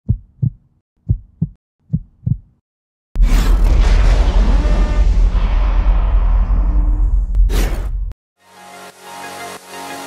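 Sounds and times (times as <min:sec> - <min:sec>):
heartbeat thumps: 0:00.0 - 0:02.6.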